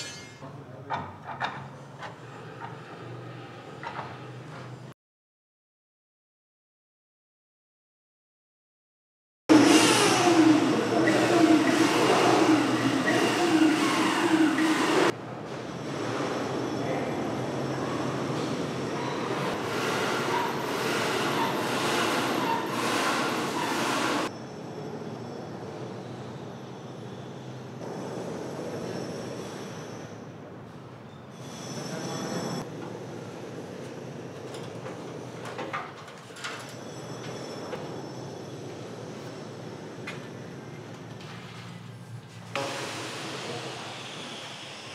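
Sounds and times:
construction work noise: 0:00.0 - 0:05.0, 0:09.5 - 0:44.9.

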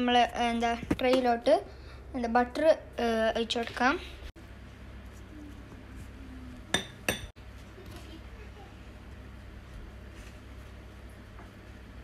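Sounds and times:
kitchenware clinking: 0:06.7 - 0:07.4.

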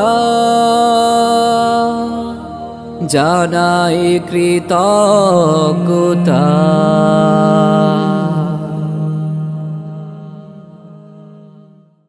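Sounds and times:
steady low drone: 0:00.0 - 0:11.6.

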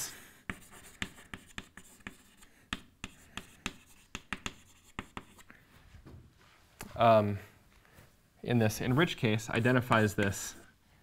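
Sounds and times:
chalk scratching: 0:00.2 - 0:05.5, 0:08.8 - 0:10.8
chalk tapping on blackboard: 0:00.4 - 0:05.5, 0:09.5 - 0:10.7.

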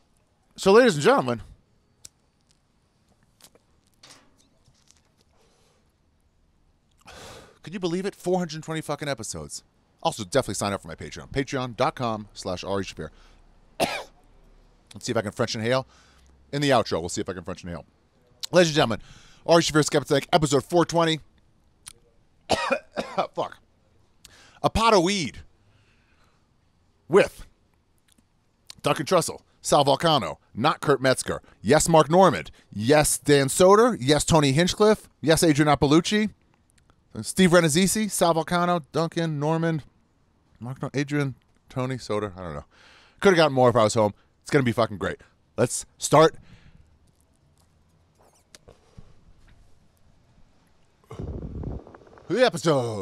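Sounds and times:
man coughing: 0:13.8 - 0:14.2, 0:22.5 - 0:23.4.

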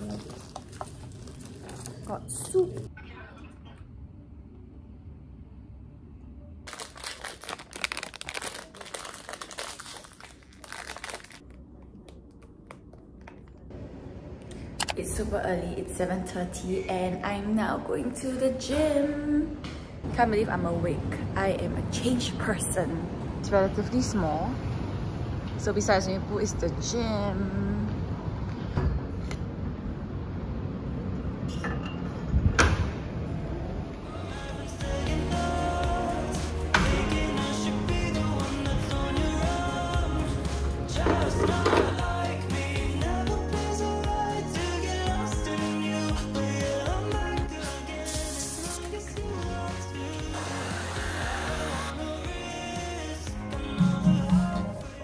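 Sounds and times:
wrapper crinkling: 0:00.0 - 0:02.9, 0:06.7 - 0:13.6.

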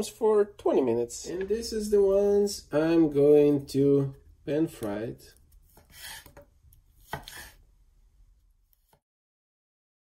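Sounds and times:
knife slicing stroke: 0:05.5 - 0:07.6.

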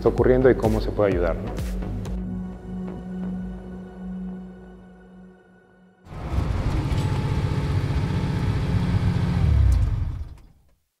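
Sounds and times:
car engine rumbling and revving: 0:06.1 - 0:10.6.

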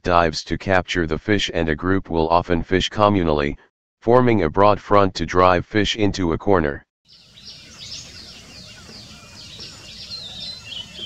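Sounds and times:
small birds chirping: 0:07.1 - 0:11.0.

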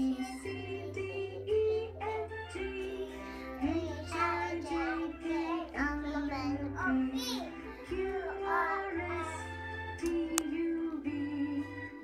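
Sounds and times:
child singing: 0:00.0 - 0:11.7
music track with bass line: 0:00.0 - 0:12.0.

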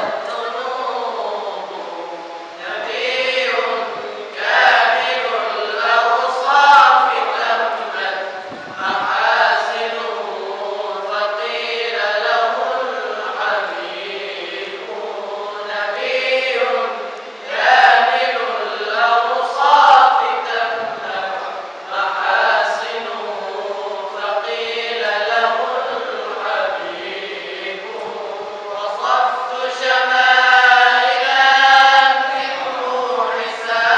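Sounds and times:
men reciting melodically: 0:00.0 - 0:33.9.

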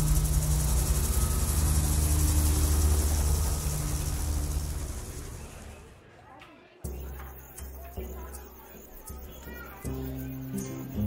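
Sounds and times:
high hiss: 0:00.0 - 0:05.7
steady low rumble: 0:00.0 - 0:05.8.

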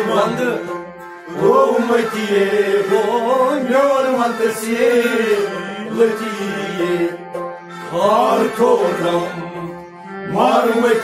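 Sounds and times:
harmonium chords: 0:00.0 - 0:11.0
men singing: 0:00.0 - 0:11.0.

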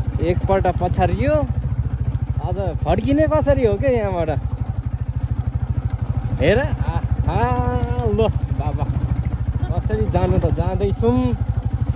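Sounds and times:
motorcycle engine running: 0:00.0 - 0:11.9.

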